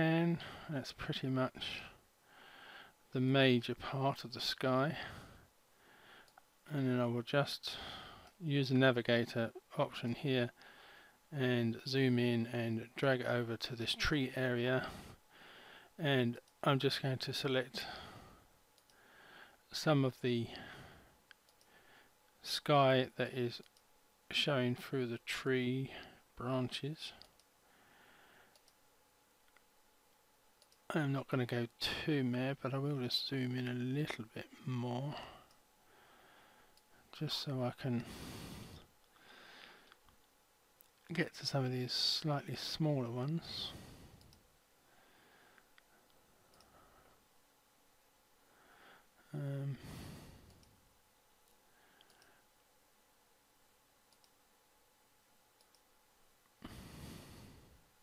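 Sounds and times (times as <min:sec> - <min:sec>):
computer mouse clicks: 0:28.5 - 0:28.8, 0:50.4 - 0:50.8, 0:51.4 - 0:52.3, 0:54.1 - 0:54.4, 0:55.6 - 0:55.9.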